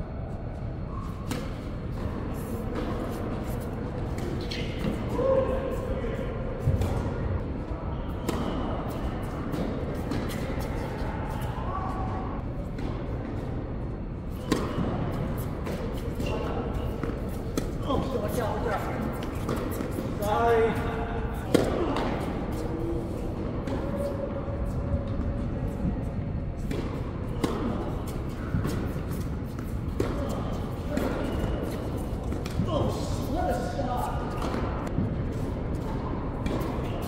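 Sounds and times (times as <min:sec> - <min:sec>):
tennis balls struck by racquets: 0:14.3 - 0:20.2, 0:21.4 - 0:22.6, 0:26.6 - 0:32.7, 0:34.3 - 0:37.0
tennis balls bouncing on hard court: 0:14.4 - 0:20.2, 0:26.6 - 0:32.7, 0:34.3 - 0:36.9.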